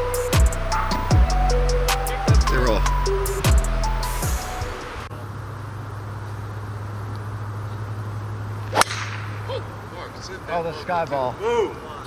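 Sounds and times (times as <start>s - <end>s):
electronic music with heavy bass: 0.0s - 5.1s
low outdoor hum: 0.0s - 12.0s
golf club striking ball: 8.6s - 9.6s.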